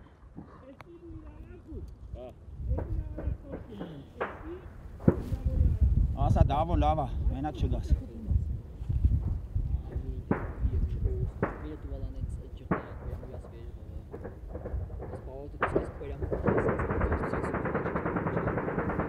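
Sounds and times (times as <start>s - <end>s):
single gunshots: 2.8s - 5.4s, 9.9s - 19.0s
dense rattling: 12.7s - 19.0s.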